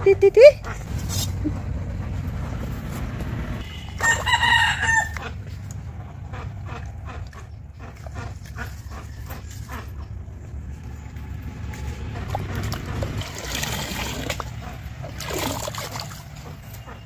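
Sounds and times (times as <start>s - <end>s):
rooster crowing: 4.0s - 5.3s
steady low rumble: 5.1s - 15.2s.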